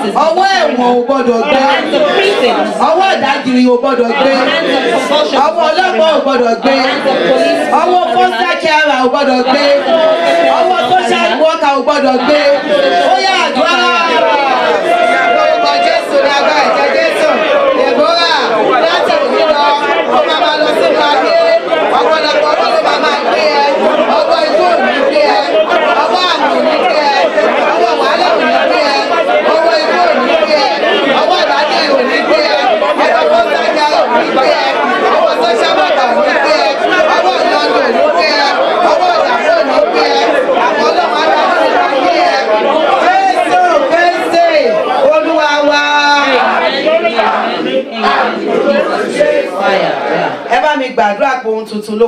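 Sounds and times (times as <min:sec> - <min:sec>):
voices praying aloud together: 0:00.0 - 0:52.0.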